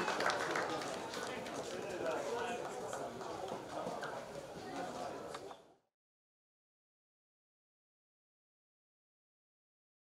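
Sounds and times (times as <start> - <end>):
people talking: 0.0 - 5.6.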